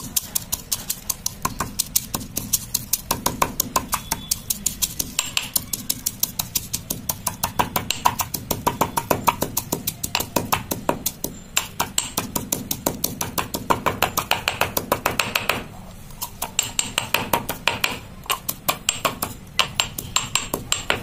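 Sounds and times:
stone pestle pounding in mortar: 0.0s - 21.0s.

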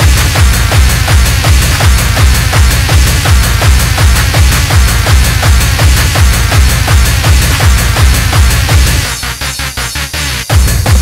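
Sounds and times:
fast hardcore techno: 0.0s - 11.0s
fast kick-drum beat: 0.0s - 11.0s.

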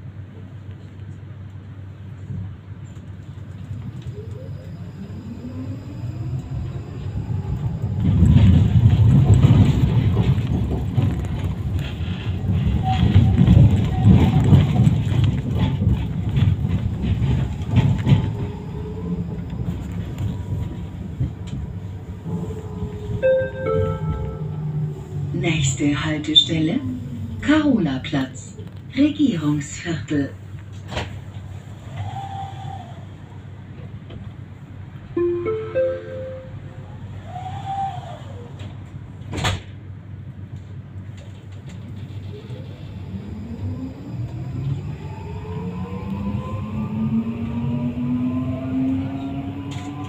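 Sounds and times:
tram rumbling on rails: 0.0s - 50.0s
wheels clattering over track: 7.8s - 24.2s
electronic held signal tone: 23.2s - 24.6s, 35.2s - 36.8s
three-note rising chime: 23.2s - 24.7s, 35.2s - 36.8s.

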